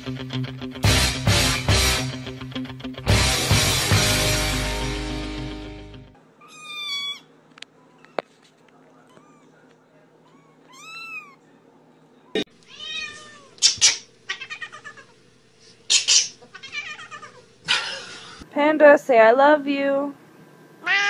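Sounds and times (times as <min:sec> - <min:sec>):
cats meowing and yowling: 0:06.4 - 0:08.2, 0:10.2 - 0:11.4, 0:12.7 - 0:15.1, 0:16.5 - 0:17.4.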